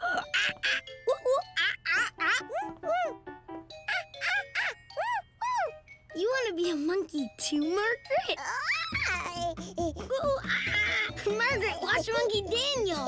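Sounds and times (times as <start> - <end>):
light music with tinkling notes: 0.0 - 13.0.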